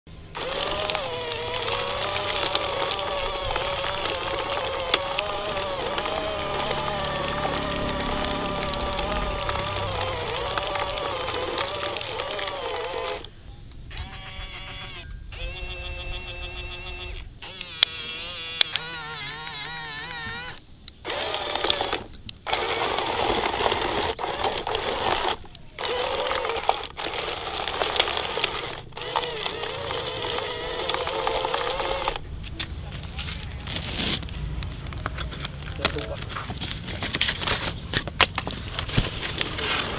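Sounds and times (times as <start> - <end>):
toy excavator motors whining: 0.1 - 32.3, 33.0 - 39.9.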